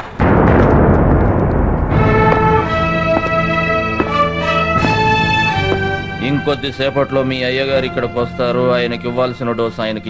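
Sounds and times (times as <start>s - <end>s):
loud explosion-like blast: 0.0s - 6.6s
film music: 0.0s - 10.0s.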